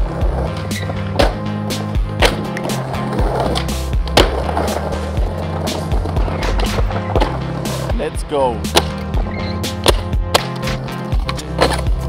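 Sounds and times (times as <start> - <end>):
background music with steady beat: 0.0 - 12.0
skateboard wheels rolling on concrete: 0.0 - 12.0
skateboard pops and landings: 0.7 - 4.9, 8.7 - 9.1, 9.7 - 11.9.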